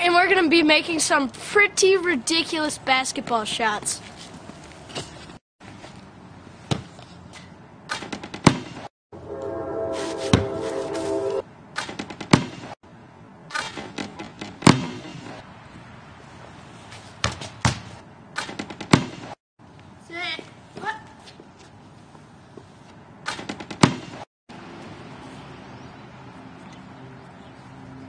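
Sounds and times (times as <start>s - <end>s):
basketball hitting rim and ground: 6.6s - 8.9s, 11.7s - 12.8s, 13.5s - 15.4s, 16.9s - 19.4s, 23.2s - 24.2s
held tone: 9.2s - 11.4s.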